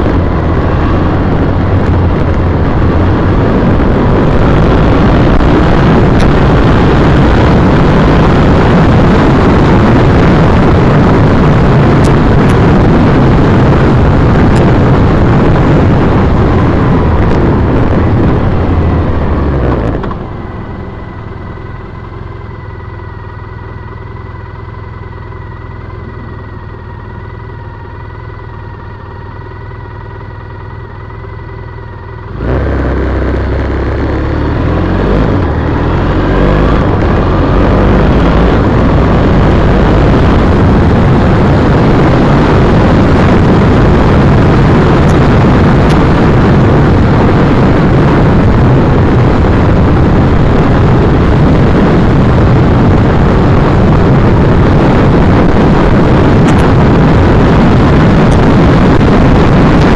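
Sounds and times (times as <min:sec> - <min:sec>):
motorcycle engine: 0:00.0 - 0:59.9
wind noise on microphone: 0:00.0 - 0:59.9.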